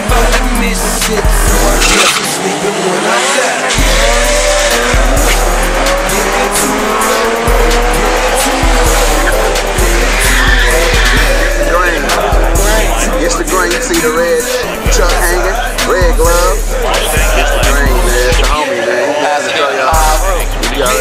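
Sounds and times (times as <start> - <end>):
music with heavy bass beat: 0.0 - 2.4, 3.7 - 18.6, 19.9 - 21.0
racing car engine accelerating: 0.0 - 18.6.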